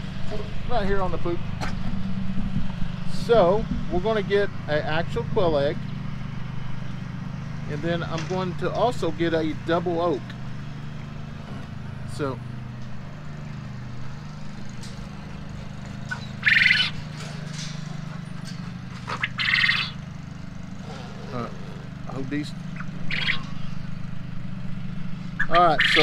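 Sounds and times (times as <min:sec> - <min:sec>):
low mechanical hum: 0:00.0 - 0:26.0
quail chirping: 0:16.0 - 0:17.2, 0:18.8 - 0:20.0, 0:20.8 - 0:24.0, 0:25.3 - 0:26.0.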